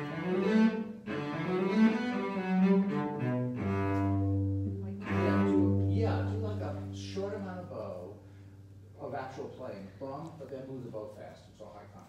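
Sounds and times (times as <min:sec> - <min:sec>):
bowed cello: 0:00.0 - 0:09.3.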